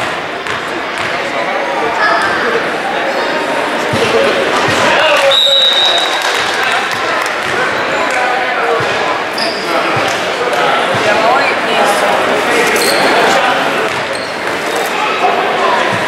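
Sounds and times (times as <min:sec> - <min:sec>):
spectators chattering: 0:00.0 - 0:16.0.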